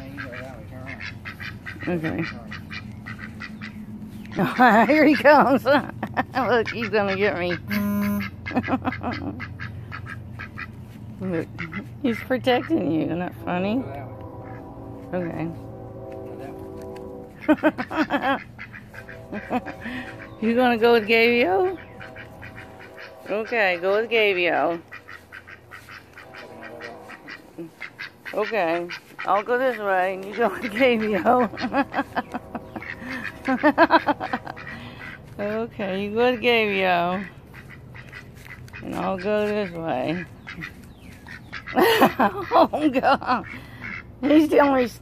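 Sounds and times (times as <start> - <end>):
duck quacking softly: 0.0 - 5.4, 6.4 - 12.9, 17.4 - 42.6, 43.4 - 45.0
woman laughing loudly: 4.4 - 6.6, 7.8 - 9.5, 17.4 - 18.5, 19.2 - 20.3, 30.8 - 35.0, 41.8 - 43.6.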